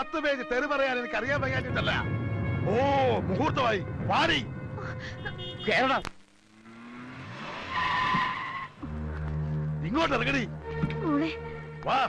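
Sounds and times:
car speeding up: 6.4 - 9.8
tyres screeching: 6.7 - 9.4.

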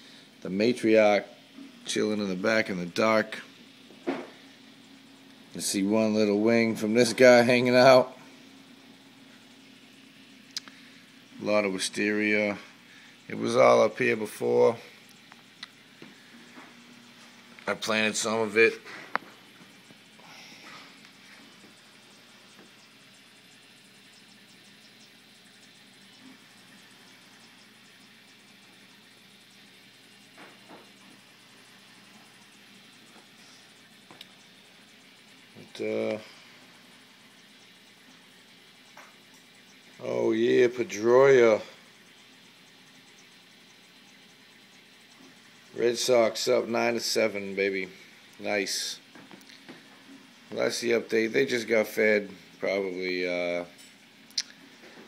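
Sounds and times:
low steady hum: 0.0 - 55.0
water trickling: 0.1 - 55.0.

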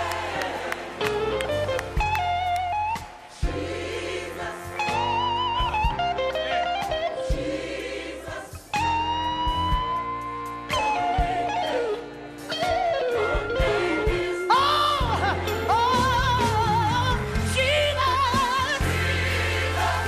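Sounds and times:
bass and drums: 1.1 - 20.0.

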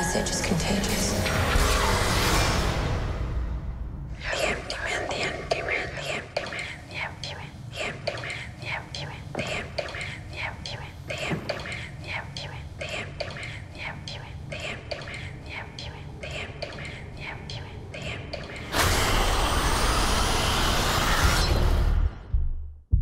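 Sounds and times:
overlapping whispering voices: 4.2 - 18.7.

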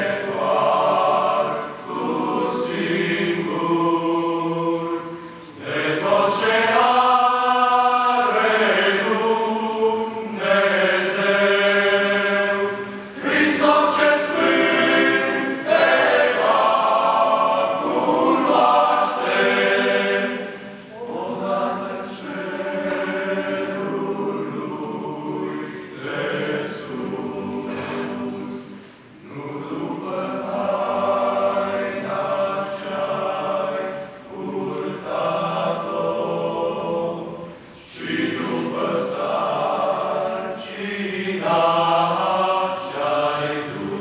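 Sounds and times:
male choir singing a cappella: 0.0 - 44.0.

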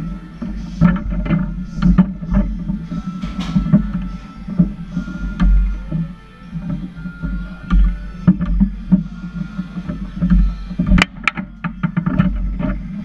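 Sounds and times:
foosball ball and players clacking: 0.0 - 13.0
rods sliding and thudding: 0.0 - 13.0.

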